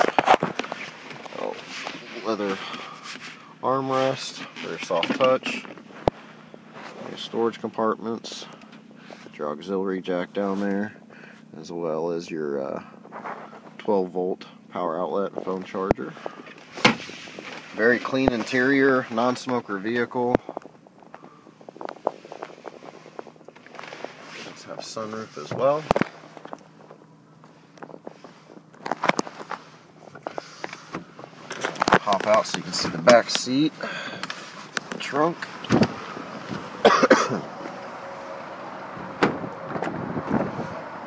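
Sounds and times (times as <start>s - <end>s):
clothing rustle: 0.0s - 3.4s, 20.6s - 33.6s
car door clicks: 39.2s - 40.0s.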